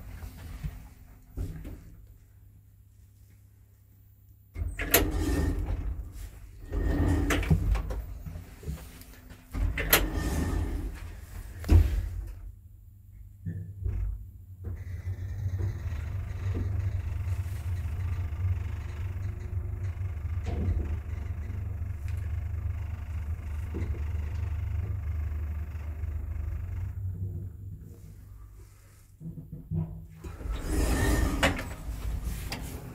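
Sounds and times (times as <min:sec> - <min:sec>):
elevator doors closing: 0:04.6 - 0:08.4, 0:09.5 - 0:12.2, 0:14.7 - 0:27.1, 0:30.2 - 0:32.9
elevator car humming: 0:04.6 - 0:12.4, 0:13.9 - 0:29.0, 0:30.2 - 0:32.9.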